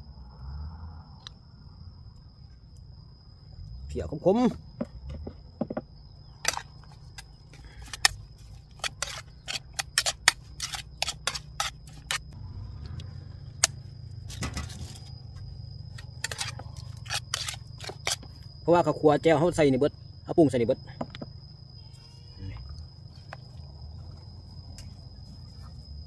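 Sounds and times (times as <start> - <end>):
metal spoon scraping metal bowl: 8.8 - 12.2.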